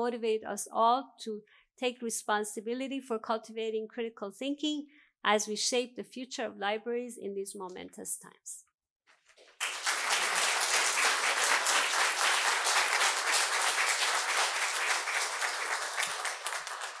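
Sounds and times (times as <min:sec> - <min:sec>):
audience applauding: 0:09.5 - 0:17.0.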